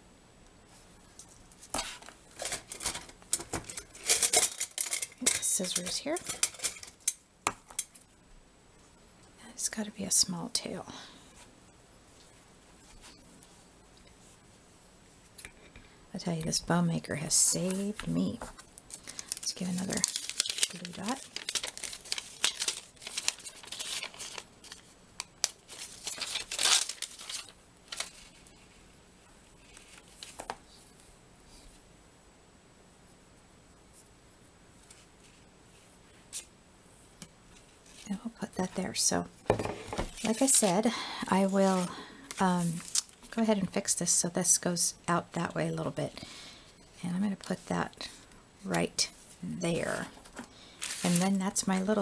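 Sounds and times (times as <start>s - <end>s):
paper strip crinkling and rustling: 1.1s - 7.2s, 17.3s - 28.8s, 29.4s - 31.0s, 37.5s - 38.2s, 39.9s - 43.4s, 50.2s - 52.0s.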